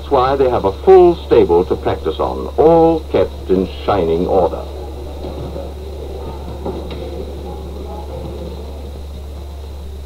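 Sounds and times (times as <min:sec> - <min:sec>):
faint indistinct sounds: 0:00.0 - 0:10.0
film soundtrack hum: 0:00.0 - 0:10.0.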